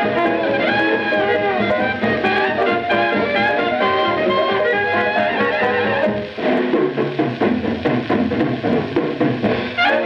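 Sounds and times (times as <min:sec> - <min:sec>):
drums carrying the beat: 0:00.0 - 0:10.0
traditional jazz band playing: 0:00.0 - 0:10.0.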